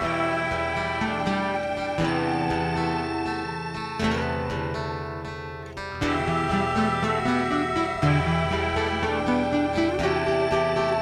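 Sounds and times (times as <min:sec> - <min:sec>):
guitar chord strummed: 0:00.0 - 0:11.0.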